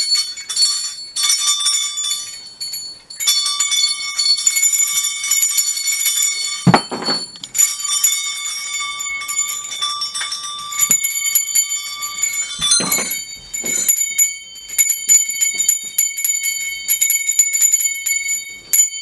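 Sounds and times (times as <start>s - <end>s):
small bells ringing: 0.0s - 19.0s.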